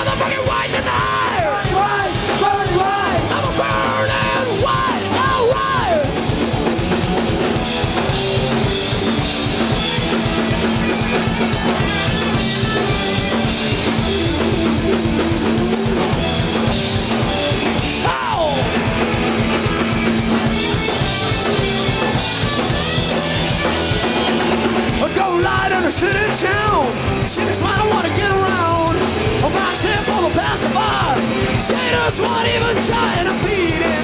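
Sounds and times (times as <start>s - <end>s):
bass guitar: 0.0s - 34.0s
distorted electric guitars: 0.0s - 34.0s
driving drum kit: 0.0s - 34.0s.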